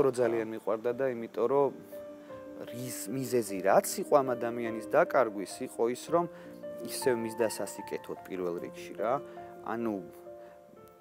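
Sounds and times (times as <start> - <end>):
soft background music: 0.0 - 11.0
man speaking: 2.6 - 10.2.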